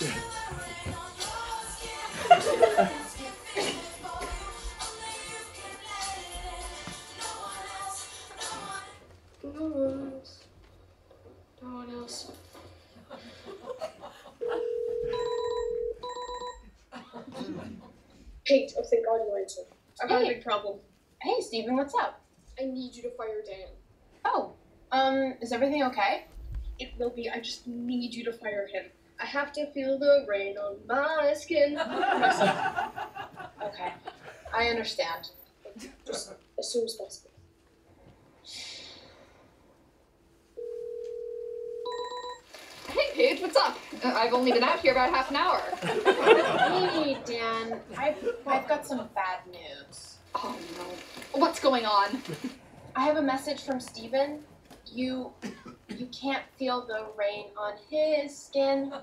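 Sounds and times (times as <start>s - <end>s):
phone ringing tone: 14.4s - 16.7s, 40.6s - 42.5s.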